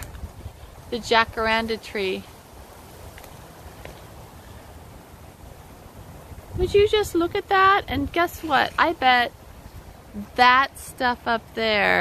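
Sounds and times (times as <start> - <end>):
faint hiss: 0.0 - 12.0
wind buffeting microphone: 0.0 - 12.0.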